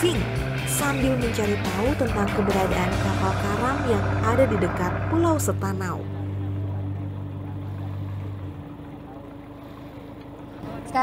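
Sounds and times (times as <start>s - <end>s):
boat engine hum: 0.0s - 11.0s.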